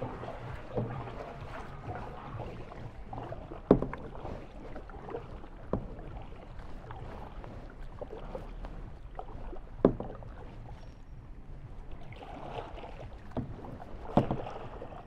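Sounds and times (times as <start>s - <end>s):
kayak paddle splashing in water: 0.0s - 10.9s, 11.7s - 15.0s.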